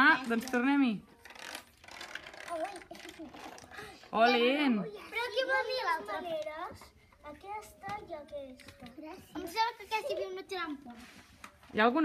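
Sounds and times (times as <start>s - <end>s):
plastic clicks and rattles: 1.2s - 3.7s.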